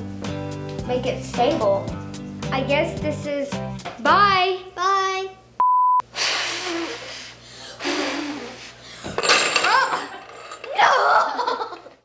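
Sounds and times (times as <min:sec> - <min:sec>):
boy blowing: 0:06.1 - 0:08.7
metal nails clattering on table: 0:09.1 - 0:11.0
children laughing: 0:09.7 - 0:12.0.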